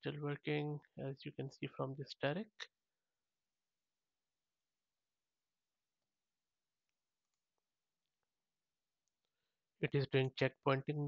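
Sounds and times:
man speaking: 0.0s - 2.8s, 9.8s - 11.0s.

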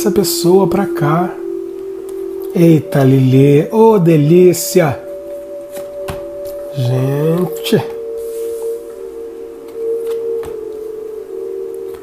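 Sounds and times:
music of steady held tones: 0.0s - 12.0s.

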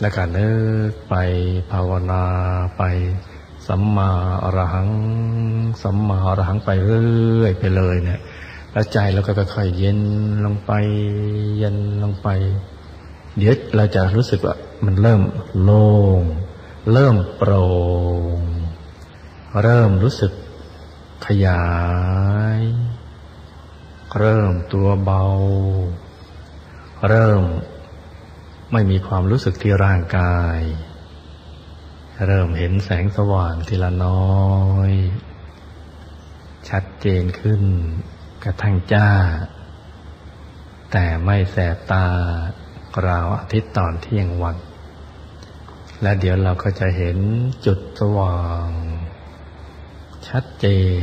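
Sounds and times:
man chanting a long word: 0.0s - 12.7s
man speaking in monotone: 0.0s - 23.2s, 24.0s - 31.2s, 32.1s - 35.4s, 36.6s - 39.8s, 40.9s - 44.8s, 45.4s - 49.3s, 50.1s - 51.0s.

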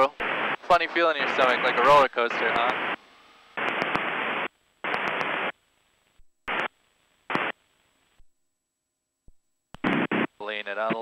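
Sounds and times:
intercom hiss bursts: 0.0s - 5.5s.

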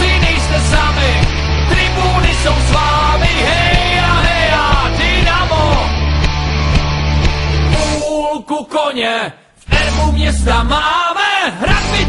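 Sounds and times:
rock band playing: 0.0s - 8.1s.

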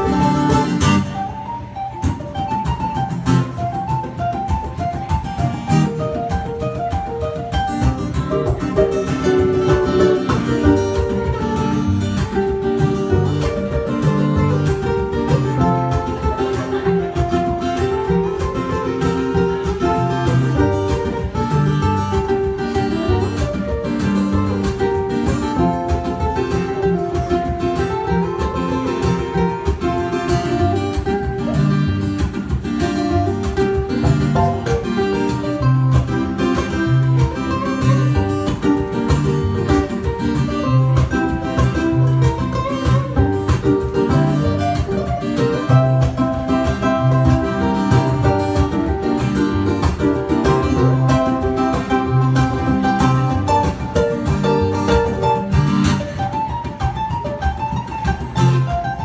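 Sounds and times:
acoustic guitar playing: 0.0s - 59.0s
ukulele playing: 0.0s - 59.0s.

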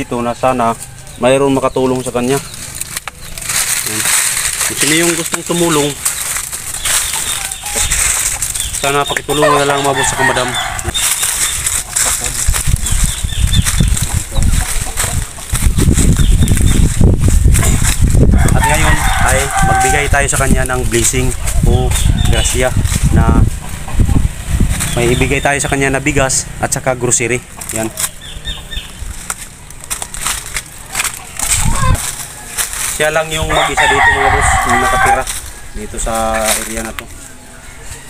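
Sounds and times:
birds chirping: 0.0s - 38.0s
camera microphone bumps: 10.8s - 19.6s.

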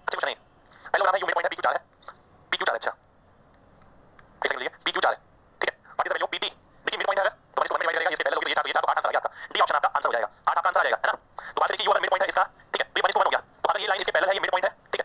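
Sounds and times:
man talking through phone speaker: 0.0s - 1.9s, 2.5s - 3.0s, 4.4s - 15.0s.

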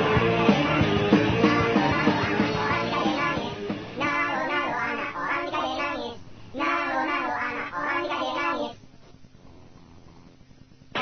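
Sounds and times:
child singing: 0.5s - 8.8s.

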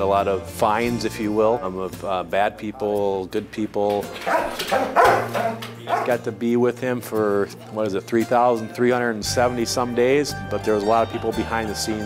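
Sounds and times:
dog barking: 4.2s - 6.2s.

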